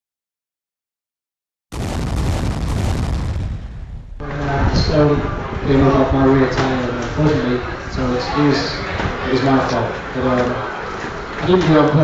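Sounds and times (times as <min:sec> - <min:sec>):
deep rumbling boom: 0:01.7 - 0:06.2.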